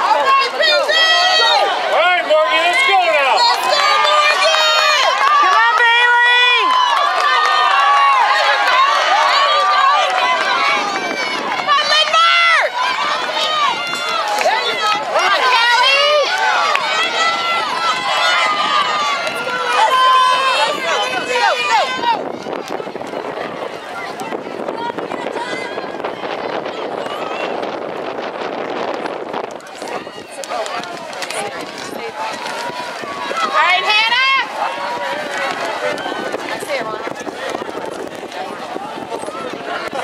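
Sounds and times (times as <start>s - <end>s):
crowd yelling and cheering: 0.0s - 40.0s.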